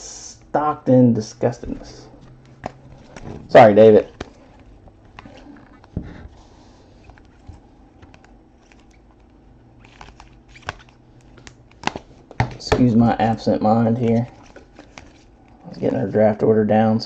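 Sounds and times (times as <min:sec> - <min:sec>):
faint room hum: 0:00.0 - 0:17.0.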